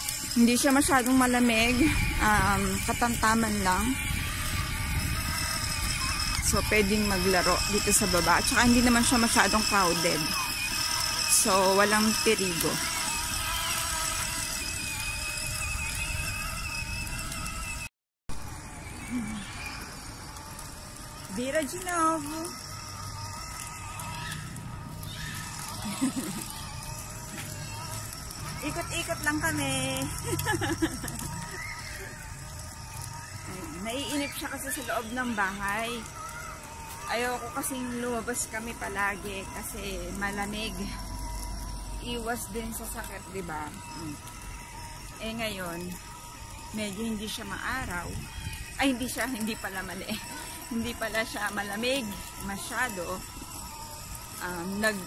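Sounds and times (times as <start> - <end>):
toy motorcycle motor whine: 0.0 - 55.0
woman talking: 0.3 - 4.0, 6.4 - 10.4, 11.3 - 13.0, 21.3 - 22.6, 28.6 - 31.1, 33.5 - 36.1, 37.0 - 41.0, 42.0 - 44.2, 45.1 - 46.0, 46.7 - 53.3, 54.4 - 55.0
woman laughing: 25.8 - 26.6, 30.2 - 31.6.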